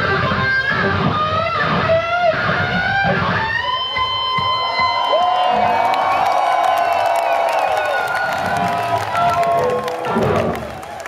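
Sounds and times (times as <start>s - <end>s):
electric guitar solo: 0.0s - 5.7s
crowd cheering: 3.1s - 11.0s.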